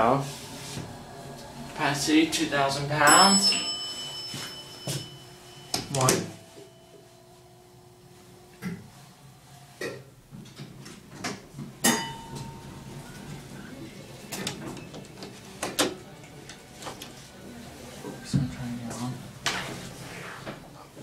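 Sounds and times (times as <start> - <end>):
elevator hum: 0.0 - 15.4.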